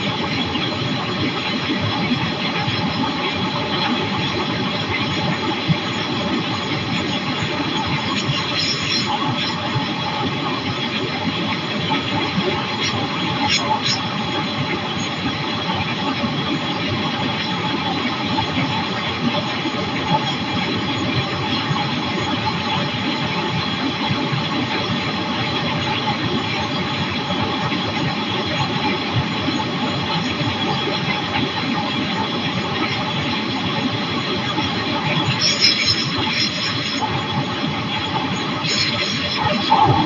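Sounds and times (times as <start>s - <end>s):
aircraft engine and propeller drone: 29.6s - 40.0s.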